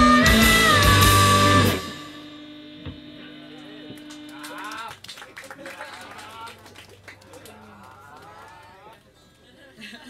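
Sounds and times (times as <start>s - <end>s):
audience whooping and clapping: 4.0s - 9.0s.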